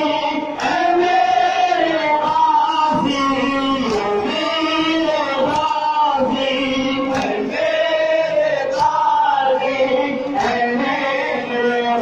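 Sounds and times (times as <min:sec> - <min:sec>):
men chanting a mourning lament: 0:00.0 - 0:12.0.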